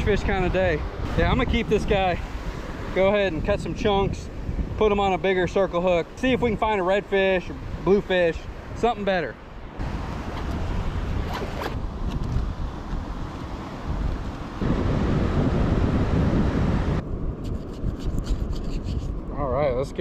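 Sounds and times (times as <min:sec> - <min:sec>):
wind rushing over microphone: 0:00.0 - 0:20.0.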